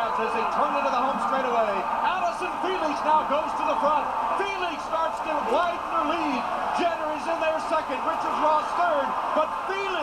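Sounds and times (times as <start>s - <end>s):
man commentating from television: 0.0s - 10.0s.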